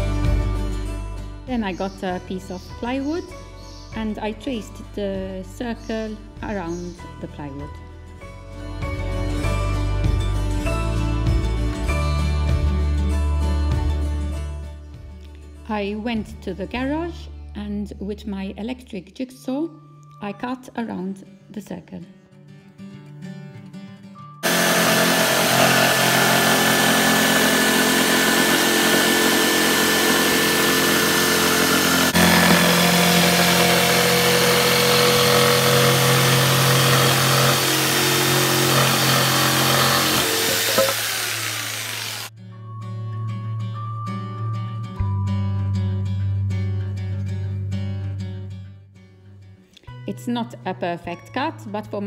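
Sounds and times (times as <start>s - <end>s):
electric jigsaw cutting plywood: 24.4s - 42.3s.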